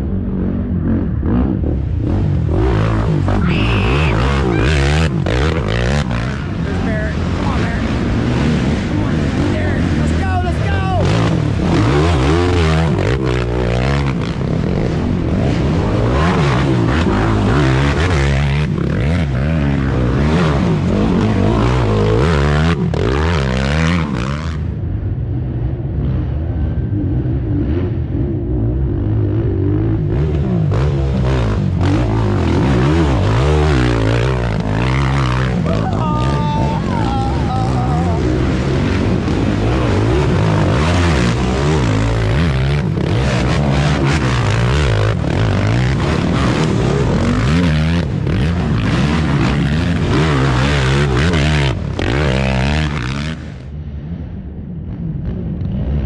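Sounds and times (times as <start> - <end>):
atv engines revving: 0.0 - 56.0.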